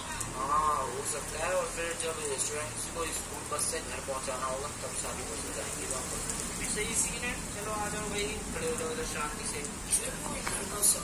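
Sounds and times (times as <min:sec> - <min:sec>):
rain falling on paving: 0:00.0 - 0:11.0.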